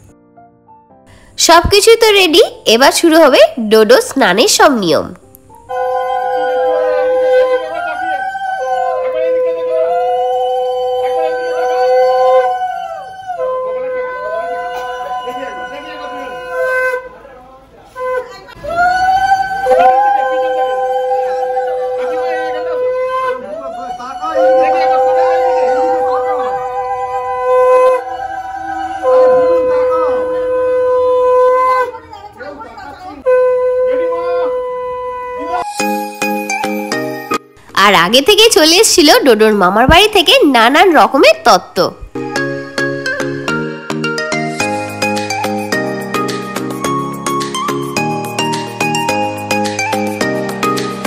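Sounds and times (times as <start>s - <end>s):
conch shell pitch rising and falling: 5.5s - 17.2s, 18.0s - 32.1s, 33.2s - 37.3s
conch shell low held note: 5.6s - 17.2s, 24.2s - 32.0s, 33.2s - 35.8s.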